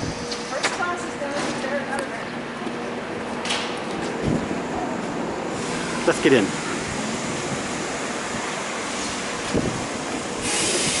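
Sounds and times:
train standing at platform: 0.0s - 11.0s
bright hiss: 10.4s - 11.0s.

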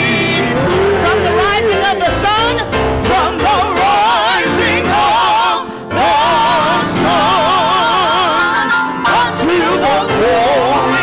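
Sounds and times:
gospel singing: 0.0s - 11.0s.

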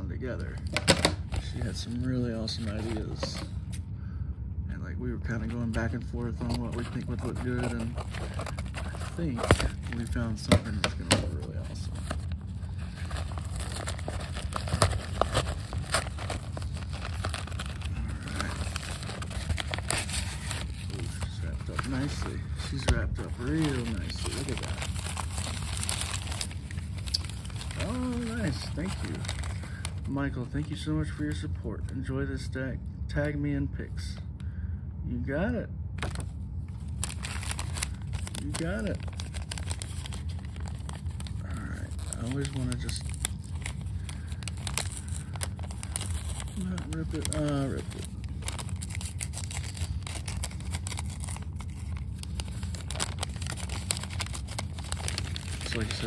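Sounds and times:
steady low hum: 0.0s - 56.0s
paper crinkling: 0.4s - 3.8s, 5.4s - 31.3s, 36.0s - 56.0s.

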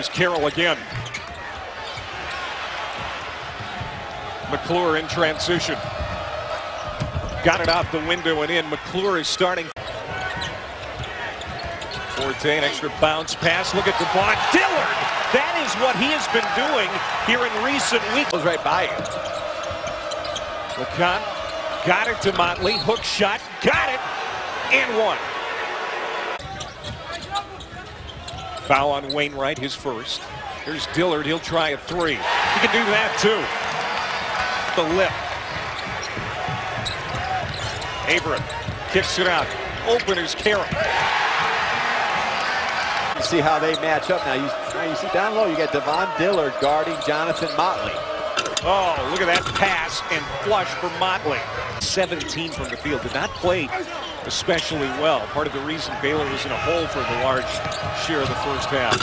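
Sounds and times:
arena crowd noise: 0.0s - 59.0s.

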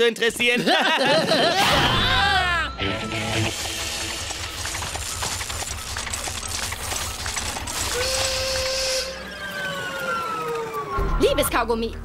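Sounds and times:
low chugging pulse: 2.8s - 11.8s
rapid mechanical clicking and clatter: 3.4s - 11.0s.

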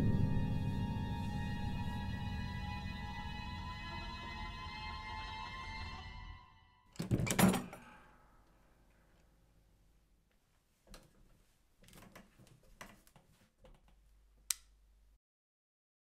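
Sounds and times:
loft hatch thudding open: 7.0s - 7.9s.

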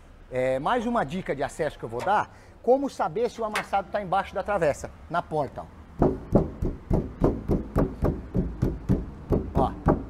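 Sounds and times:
knuckles knocking on car door: 6.0s - 10.0s.

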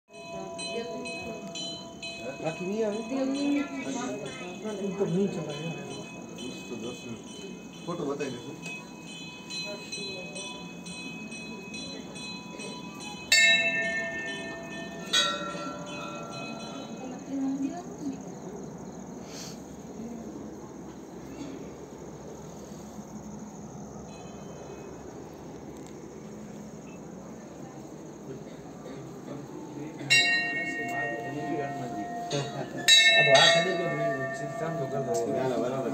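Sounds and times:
temple bells ringing: 0.1s - 17.9s, 24.0s - 25.5s, 28.8s - 35.9s
murmur of people: 0.1s - 35.9s.

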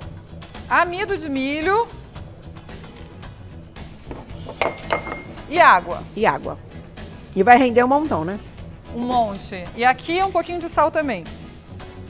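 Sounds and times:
quiet background music: 0.0s - 12.0s
ceramic bowls clinking: 4.1s - 5.8s.

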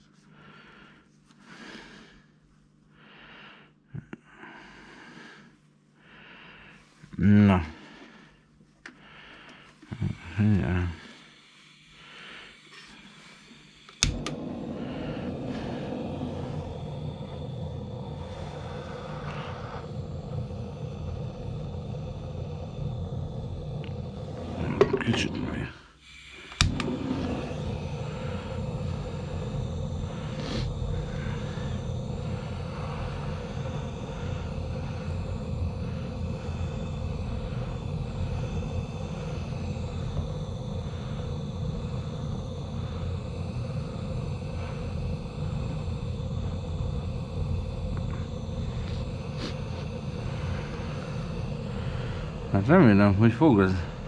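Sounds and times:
gas flame hissing: 0.0s - 54.0s
blowtorch igniter click: 13.8s - 21.0s, 26.3s - 30.8s.

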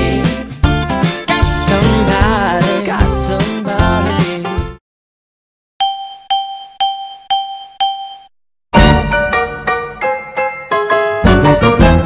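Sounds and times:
piano-like keyboard music: 6.2s - 12.0s.

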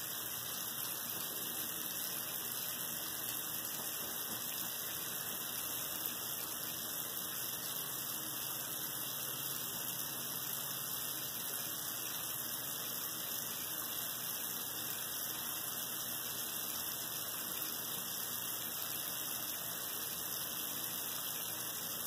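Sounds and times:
faucet water running into sink: 0.0s - 22.0s.

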